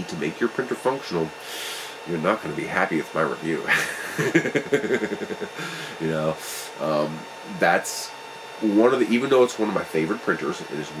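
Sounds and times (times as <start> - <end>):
man laughing: 3.5 - 6.1.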